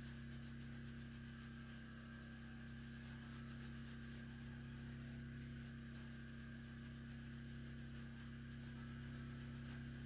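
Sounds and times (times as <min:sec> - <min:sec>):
rubbing on metal stove: 0:00.0 - 0:10.0
steady low hum: 0:00.0 - 0:10.0.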